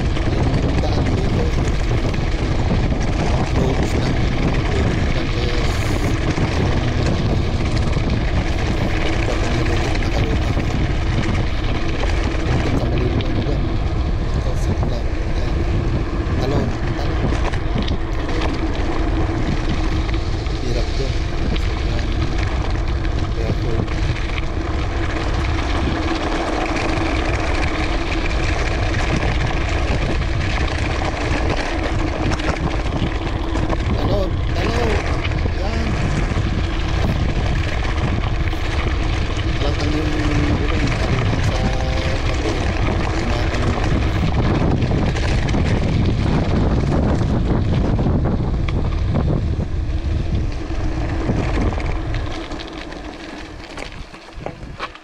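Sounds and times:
tyres rolling over gravel: 0:00.0 - 0:55.0
wind buffeting microphone: 0:00.0 - 0:55.0.

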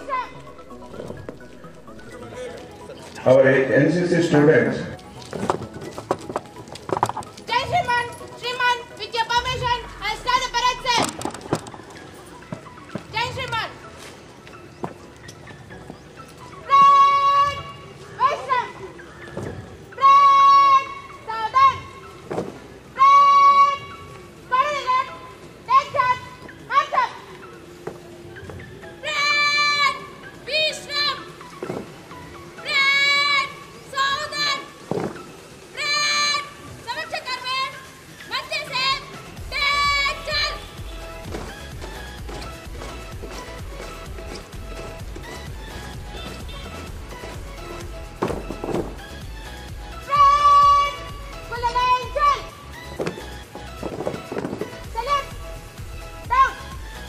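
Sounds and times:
marching stamps and shuffles: 0:04.8 - 0:17.7, 0:38.6 - 0:57.0
person shouting commands: 0:23.0 - 0:23.8, 0:50.0 - 0:52.5, 0:54.9 - 0:55.4, 0:56.2 - 0:56.7.

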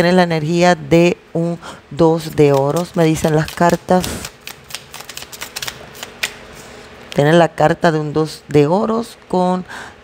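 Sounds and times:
cards shuffling: 0:02.4 - 0:06.4.

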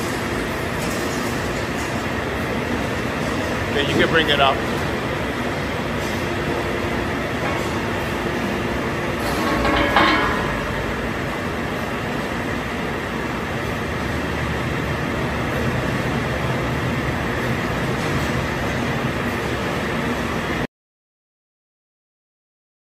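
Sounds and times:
mechanical hum: 0:00.0 - 0:20.7.

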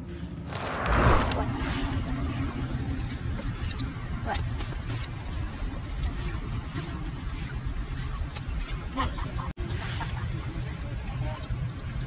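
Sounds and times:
rush of noise: 0:00.4 - 0:02.9.

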